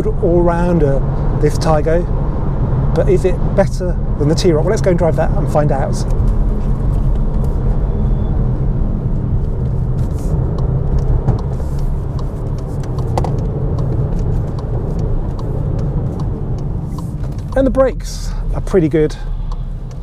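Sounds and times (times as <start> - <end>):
car engine low rumble: 0.0 - 20.0.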